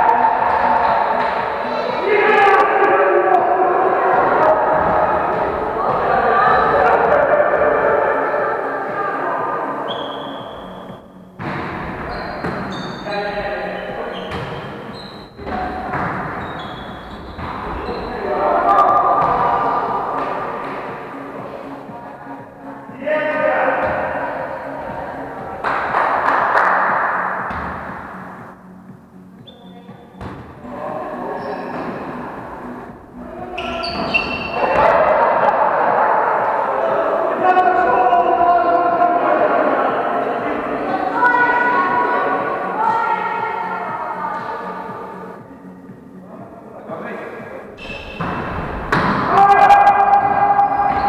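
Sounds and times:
players' voices: 0.0s - 51.0s
volleyball hits: 25.6s - 28.2s, 47.9s - 51.0s.

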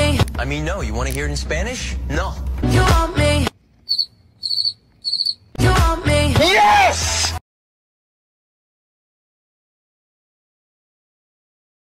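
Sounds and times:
cricket chirping: 3.9s - 5.5s.

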